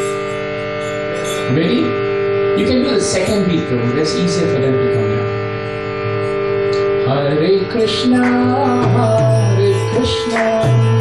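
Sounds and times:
harmonium holding a chord: 0.0s - 11.0s.

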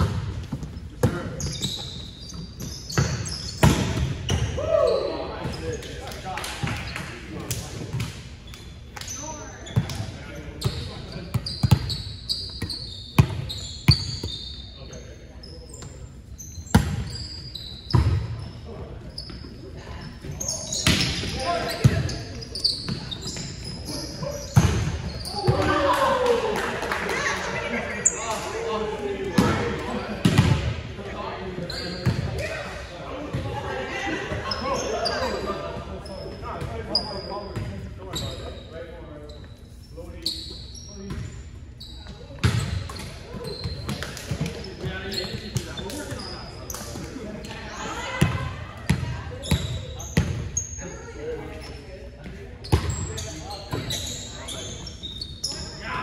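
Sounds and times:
sneaker squeaks: 0.0s - 25.9s, 31.4s - 33.5s, 34.2s - 56.0s
players calling out and chattering: 0.0s - 56.0s.

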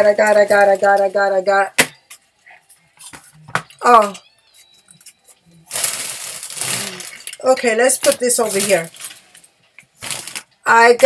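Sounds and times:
packaging rustling and crinkling: 5.6s - 7.4s, 8.0s - 10.5s.

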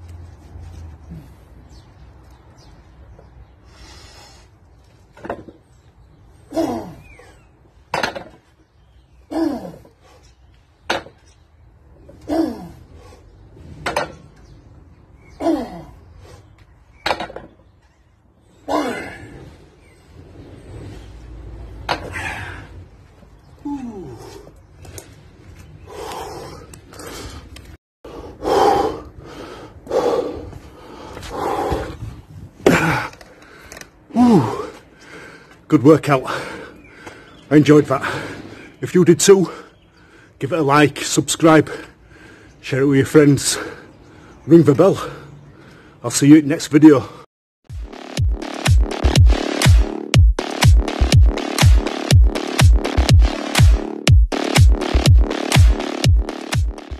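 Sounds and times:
man breathing heavily: 3.5s - 4.7s, 9.2s - 10.7s, 12.2s - 13.7s, 15.5s - 16.7s, 22.0s - 23.0s, 23.6s - 38.8s, 39.4s - 40.4s, 41.7s - 42.6s, 43.4s - 46.0s
man groaning: 23.6s - 24.3s.

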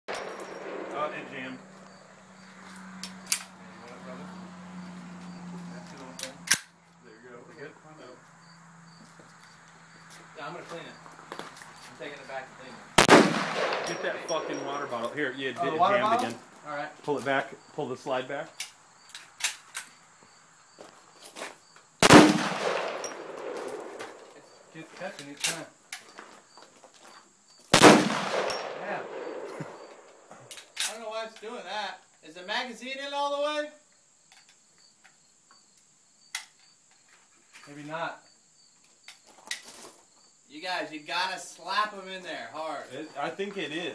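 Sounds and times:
pistol shot echoing: 0.1s - 1.5s, 13.0s - 14.7s, 22.0s - 24.1s, 27.8s - 30.1s
crickets chirping: 0.1s - 43.9s.

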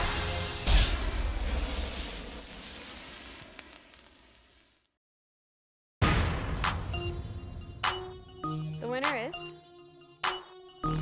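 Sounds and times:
hissing sizzle: 0.0s - 5.0s
faint crackles: 0.8s - 4.9s.

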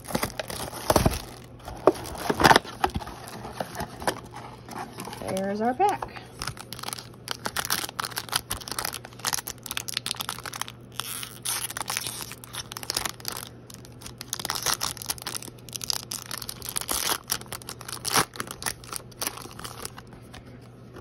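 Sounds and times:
foil wrapper tearing and crinkling: 0.0s - 4.3s, 4.9s - 20.1s.

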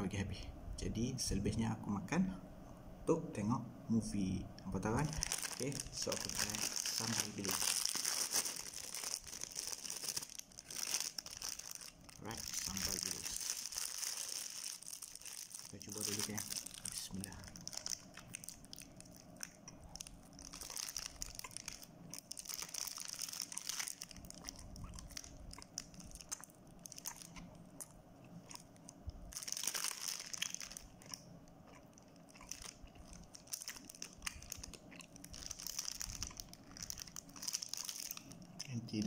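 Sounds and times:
plastic wrapper crinkling: 4.6s - 27.9s, 28.5s - 39.0s
person chewing bread: 5.2s - 38.6s.

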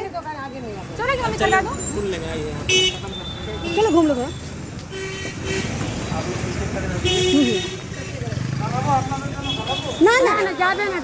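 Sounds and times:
low traffic rumble: 0.0s - 11.0s
vehicle horns honking: 2.6s - 4.3s, 4.9s - 6.3s, 6.9s - 8.2s, 9.3s - 11.0s.

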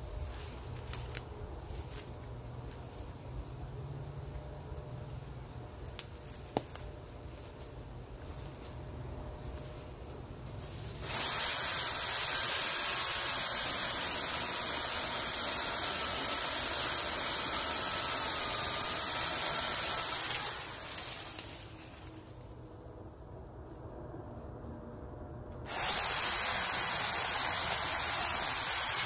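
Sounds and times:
electric pole saw cutting branch: 10.9s - 22.1s, 25.6s - 29.0s.

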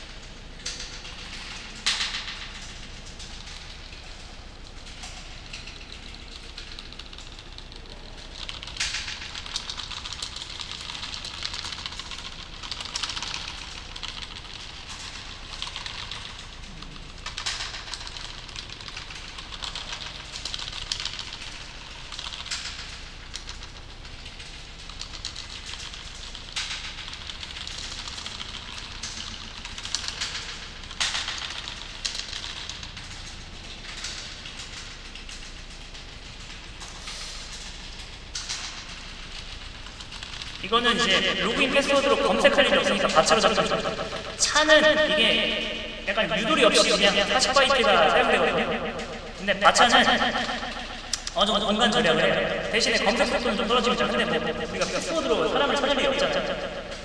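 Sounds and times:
computer keyboard typing: 4.9s - 36.9s, 37.6s - 57.0s
low steady hum: 33.0s - 57.0s.

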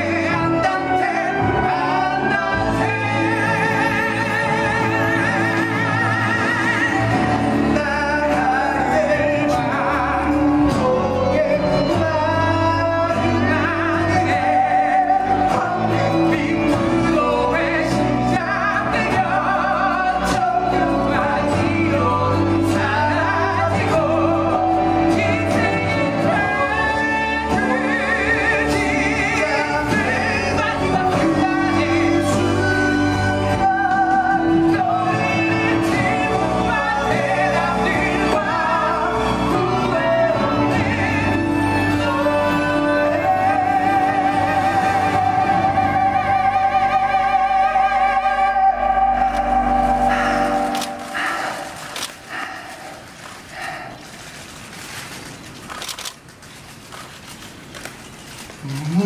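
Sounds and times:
instrumental accompaniment: 0.0s - 52.3s
men singing with vibrato: 0.0s - 54.1s.

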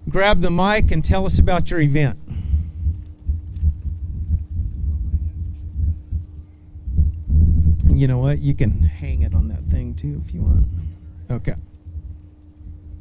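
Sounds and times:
faint steady hum: 0.0s - 13.0s
wind buffeting microphone: 0.7s - 13.0s
man speaking: 4.7s - 6.1s, 7.8s - 11.7s.

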